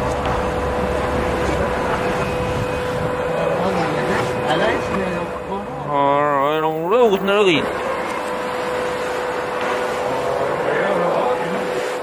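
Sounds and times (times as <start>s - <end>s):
machinery hum: 0.0s - 12.0s.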